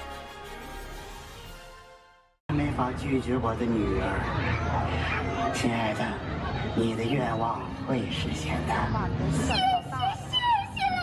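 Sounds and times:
character voices: 0:08.8 - 0:11.0
high-pitched cartoonish voice: 0:09.4 - 0:11.0.

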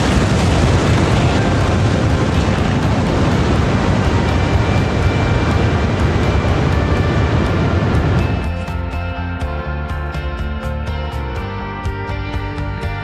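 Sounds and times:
rocket motor roaring: 0:00.0 - 0:08.6.

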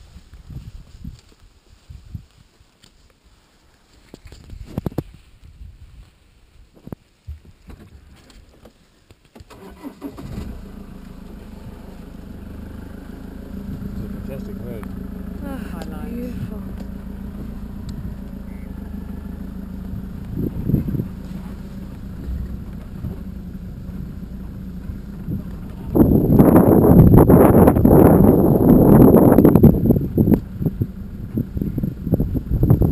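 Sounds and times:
rustling noise on microphone: 0:00.0 - 0:09.3, 0:19.8 - 0:32.9
vehicle engine idling: 0:09.5 - 0:32.9.

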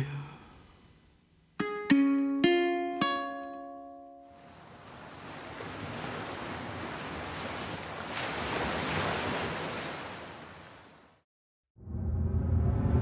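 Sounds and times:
ocean surf washing on shore: 0:04.4 - 0:11.0.

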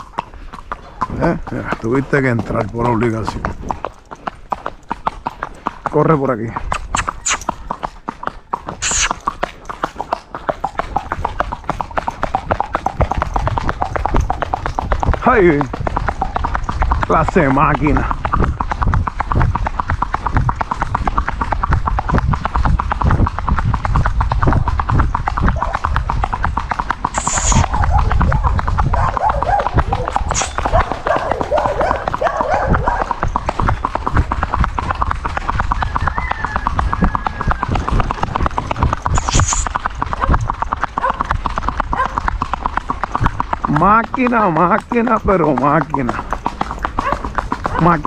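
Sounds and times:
hooves on paved road: 0:00.0 - 0:48.0.

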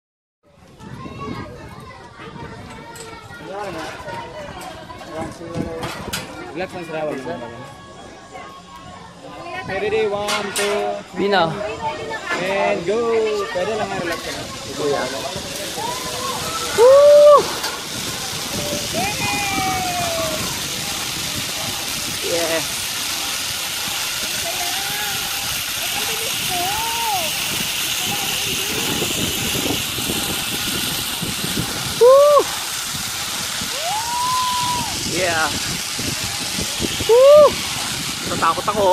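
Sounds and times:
steady hiss: 0:12.2 - 0:38.9
man whooping: 0:16.7 - 0:17.6, 0:19.0 - 0:20.4, 0:32.0 - 0:32.6, 0:33.7 - 0:35.0, 0:37.1 - 0:37.6.

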